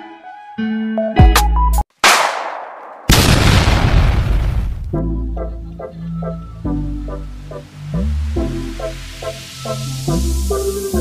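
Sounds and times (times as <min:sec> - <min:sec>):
loud firework boom: 0:03.1 - 0:05.0.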